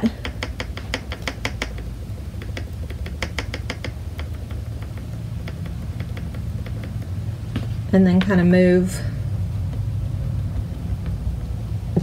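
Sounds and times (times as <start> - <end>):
sponge dabbing paint on wood: 0.0 - 12.0.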